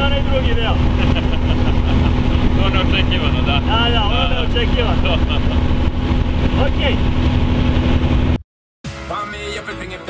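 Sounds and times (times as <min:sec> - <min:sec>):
aircraft engine and propeller drone: 0:00.0 - 0:08.4
man speaking: 0:02.6 - 0:05.0.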